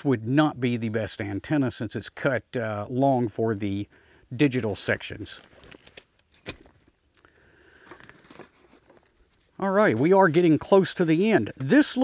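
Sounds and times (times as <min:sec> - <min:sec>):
faint rustling of bag: 0:05.3 - 0:10.3.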